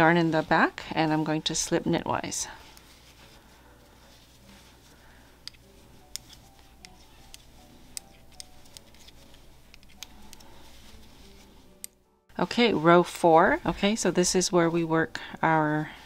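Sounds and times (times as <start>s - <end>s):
quiet background music: 0.0s - 16.0s
knitting needles clicking: 5.4s - 10.5s.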